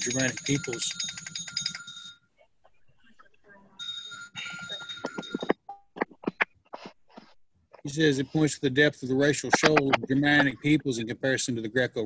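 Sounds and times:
high pulsing ringing tone: 0:03.8 - 0:06.0.

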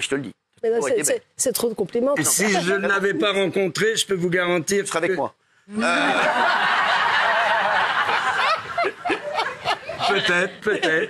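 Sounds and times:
studio audience laughing: 0:05.9 - 0:11.0.

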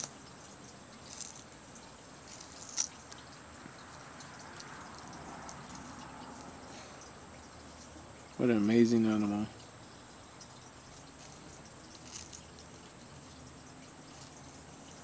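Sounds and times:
tortoise chewing crunchy food: 0:00.0 - 0:08.4, 0:09.6 - 0:15.0.

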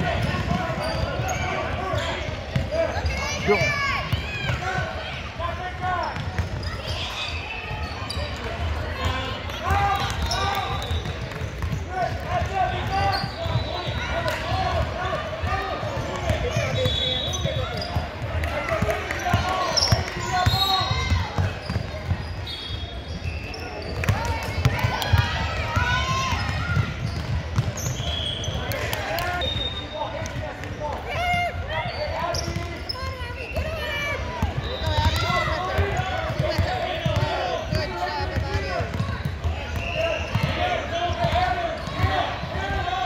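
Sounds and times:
basketball bouncing on hardwood: 0:36.3 - 0:37.2.

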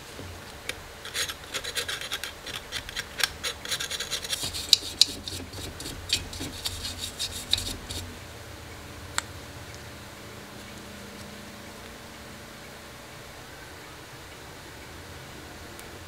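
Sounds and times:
blade scraping metal plate: 0:01.0 - 0:08.1.

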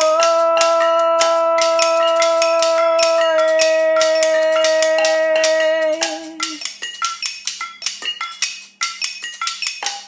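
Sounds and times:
kitchen utensil percussion: 0:00.0 - 0:10.0.

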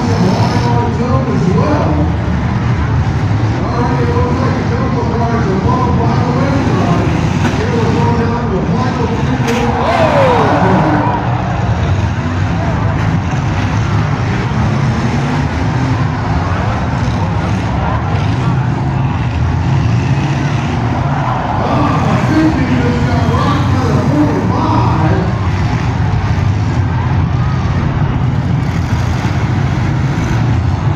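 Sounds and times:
car engines revving: 0:00.0 - 0:30.9
cars ramming each other: 0:00.0 - 0:30.9
spectators talking and shouting: 0:00.0 - 0:30.9.

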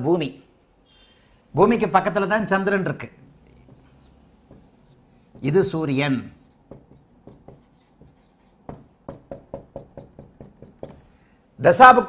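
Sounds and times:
marker scratching on whiteboard: 0:03.2 - 0:11.1.

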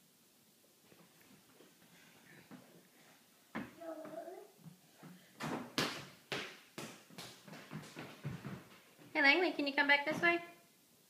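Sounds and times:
toddler footsteps on wooden floor: 0:00.9 - 0:09.3.

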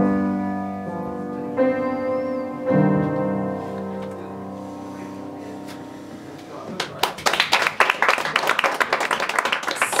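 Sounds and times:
audience applauding: 0:06.7 - 0:10.0.

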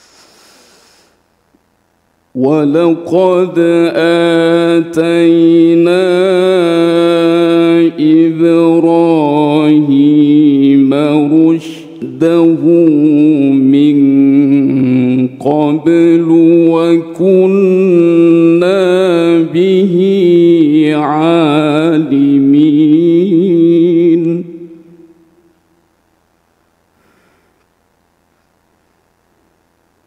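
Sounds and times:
person chanting recitation: 0:02.4 - 0:25.2.

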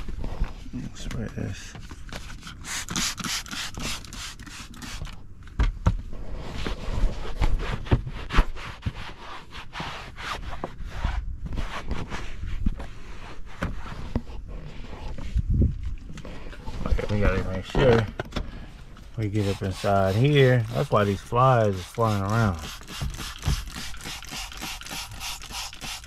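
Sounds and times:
scraping and rubbing on car seat: 0:00.0 - 0:05.1, 0:06.0 - 0:18.0, 0:19.1 - 0:26.0.

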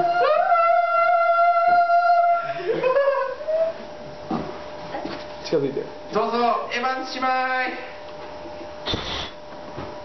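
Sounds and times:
person whooping: 0:00.0 - 0:03.8.

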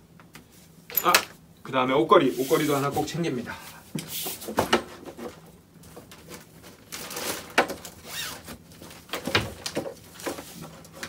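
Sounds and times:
rustling of packing a suitcase: 0:02.4 - 0:11.0.

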